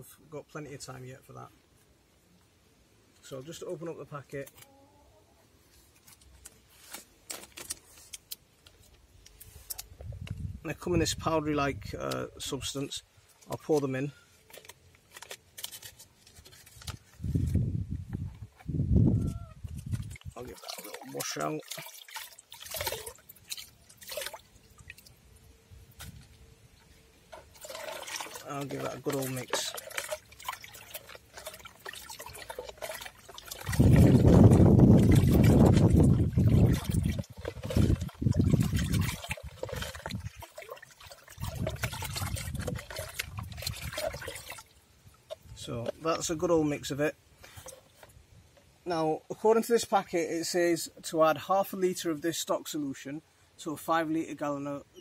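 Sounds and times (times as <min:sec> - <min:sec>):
water sloshing in plastic bucket: 0:19.3 - 0:25.2, 0:25.9 - 0:46.4.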